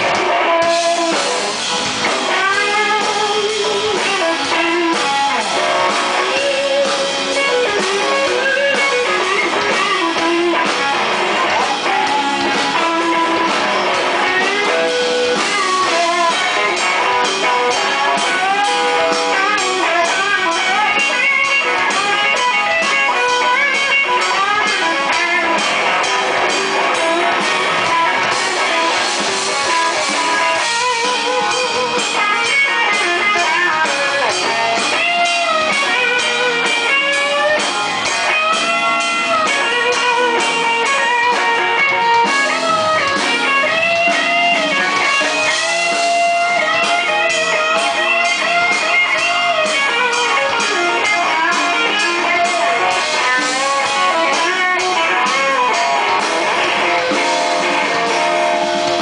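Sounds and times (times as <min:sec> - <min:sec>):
blues band playing: 0:00.0 - 0:59.0
electric guitar bending notes: 0:00.0 - 0:59.0.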